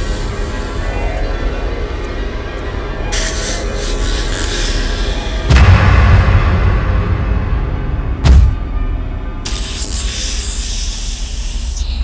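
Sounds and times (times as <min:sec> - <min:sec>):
harsh rasping hiss: 0:00.0 - 0:00.9, 0:03.1 - 0:05.5, 0:09.4 - 0:12.0
low rumbling drone: 0:00.0 - 0:12.0.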